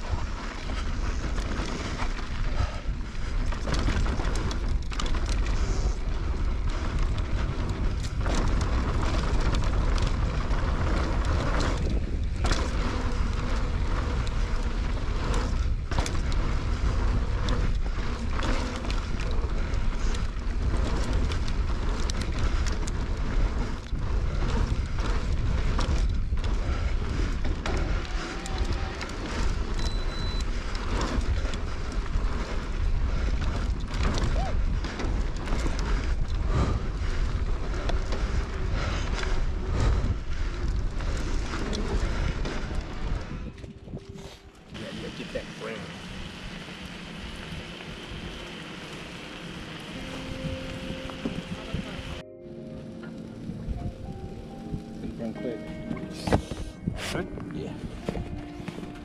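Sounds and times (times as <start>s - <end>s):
wind buffeting microphone: 0.0s - 45.4s, 46.0s - 59.0s
bike rattling over bumps: 0.0s - 59.0s
tyres on loose dirt: 0.0s - 59.0s.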